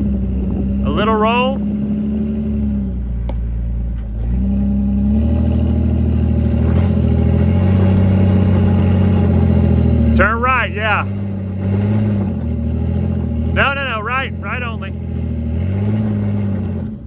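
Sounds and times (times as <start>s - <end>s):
engine crawling at low revs: 0.0s - 17.0s.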